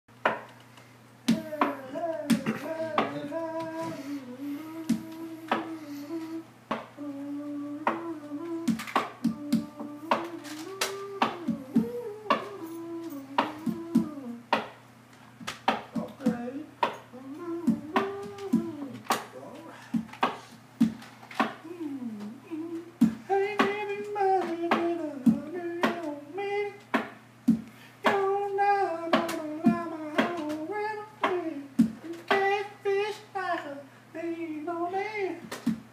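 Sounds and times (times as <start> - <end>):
hand slapping wooden counter: 0.3 - 0.6, 8.7 - 12.6, 13.4 - 14.8, 15.4 - 17.0, 17.7 - 19.3, 20.0 - 21.6, 24.4 - 25.0, 26.9 - 28.3, 29.1 - 30.6, 31.2 - 32.6
man humming: 1.3 - 14.6, 15.9 - 20.1, 21.6 - 26.8, 27.5 - 35.8.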